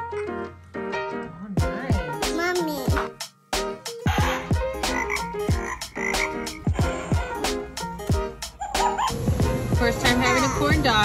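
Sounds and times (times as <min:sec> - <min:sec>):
upbeat music with thumping beat: 0:01.4 - 0:11.0
frog croaks: 0:04.9 - 0:06.7.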